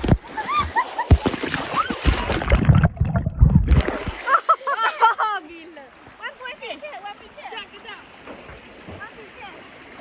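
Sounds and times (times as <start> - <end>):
water hitting microphone: 0.0 - 4.5
water splashing: 0.0 - 10.0.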